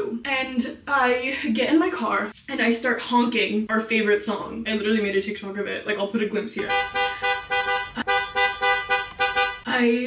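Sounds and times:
car horn short honks: 0:06.6 - 0:09.7.

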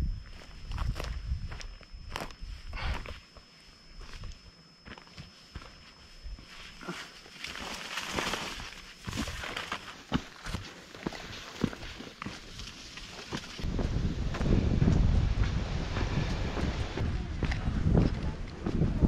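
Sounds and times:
footsteps on dirt trail: 0:00.2 - 0:19.0
low microphone rumble: 0:13.6 - 0:19.0.

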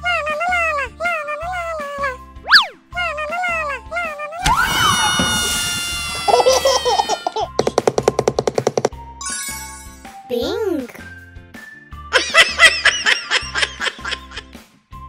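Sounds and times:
cartoon background music: 0:00.0 - 0:15.0
cartoon baby giggling: 0:00.2 - 0:04.4, 0:06.2 - 0:07.6.

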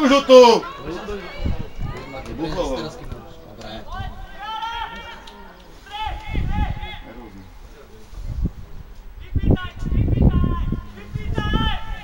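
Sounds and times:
distant players shouting: 0:00.0 - 0:07.4.

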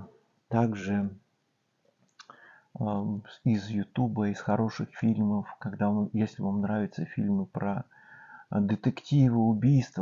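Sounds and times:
man speaking: 0:00.0 - 0:01.2, 0:02.8 - 0:10.0
faint clicks: 0:02.0 - 0:02.4.

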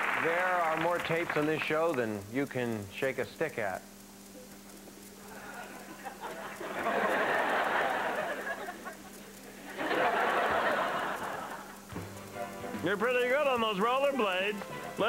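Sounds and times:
studio audience laughing and clapping: 0:05.3 - 0:11.9.

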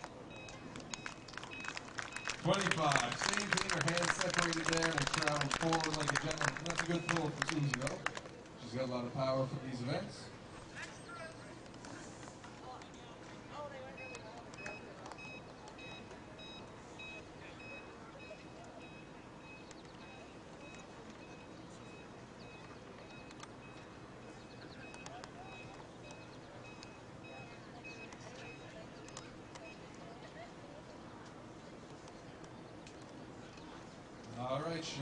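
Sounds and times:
faint distant voices: 0:02.4 - 0:35.0.

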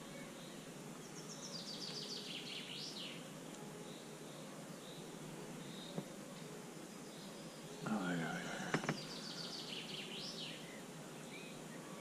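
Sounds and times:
faint high bird calls: 0:00.0 - 0:12.0
faint outdoor background noise: 0:00.0 - 0:12.0
songbird singing: 0:00.0 - 0:12.0.

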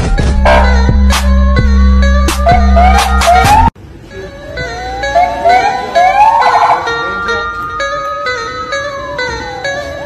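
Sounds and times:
vehicle siren wailing: 0:00.3 - 0:10.0
siren whoops: 0:02.4 - 0:07.5.

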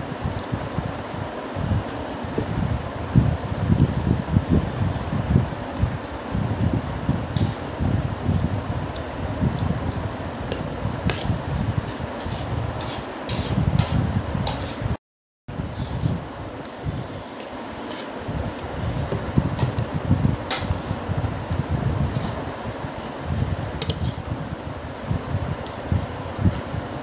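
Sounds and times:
fan air buffeting microphone: 0:00.0 - 0:27.0.

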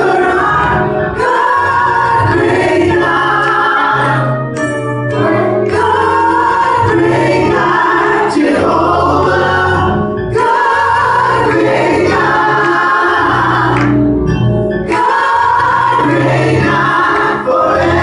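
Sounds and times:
group singing gospel in harmony: 0:00.0 - 0:18.0.

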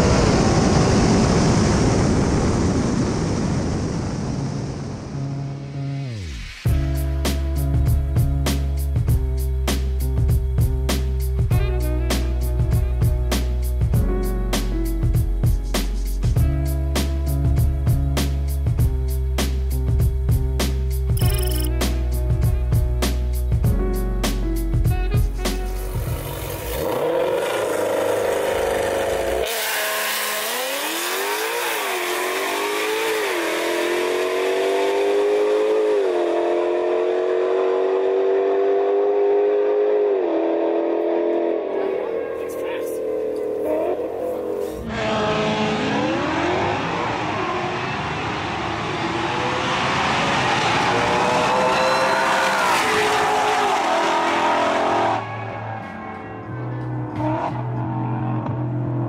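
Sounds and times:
race cars accelerating: 0:25.8 - 0:59.0.

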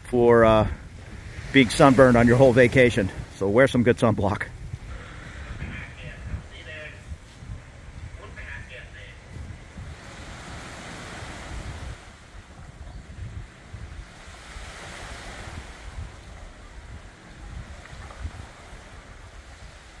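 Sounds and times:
small waves on beach: 0:00.0 - 0:20.0
wind gusting on microphone: 0:00.0 - 0:20.0.

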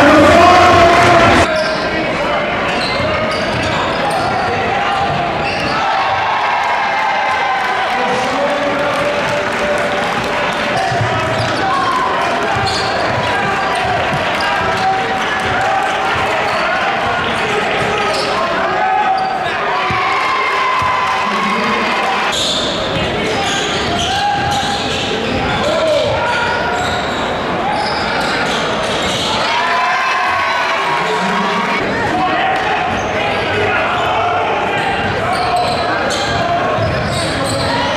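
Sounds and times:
crowd talking and shouting: 0:00.0 - 0:37.9.

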